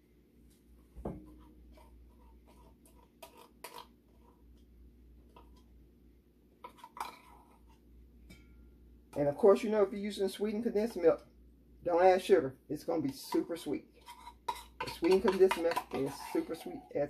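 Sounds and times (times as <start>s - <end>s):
metal spoon scraping tin can: 1.4s - 4.3s, 13.0s - 17.0s.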